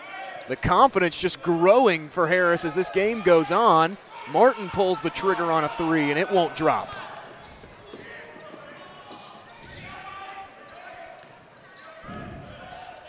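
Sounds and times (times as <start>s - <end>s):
murmur of crowd voices: 0.0s - 13.0s.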